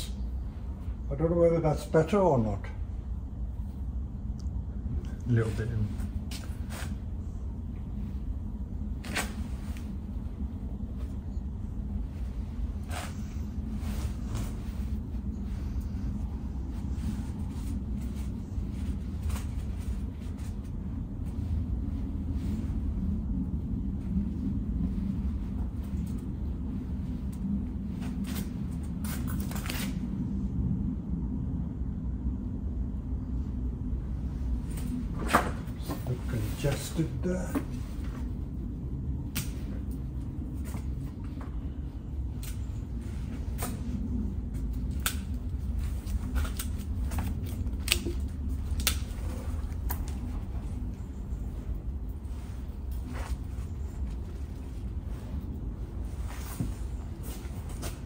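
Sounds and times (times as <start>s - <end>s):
low rumble: 0.0s - 58.0s.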